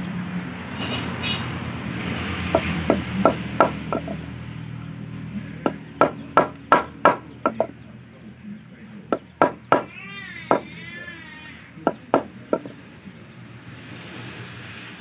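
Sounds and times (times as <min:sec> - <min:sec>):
hammer knocking metal on wood: 0:02.5 - 0:04.2, 0:05.6 - 0:07.8, 0:09.1 - 0:10.8, 0:11.9 - 0:12.8.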